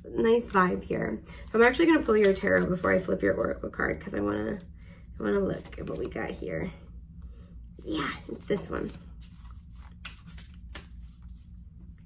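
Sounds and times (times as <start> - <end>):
low room hum: 0.0 - 12.0
cards clicking and rustling: 8.4 - 11.3.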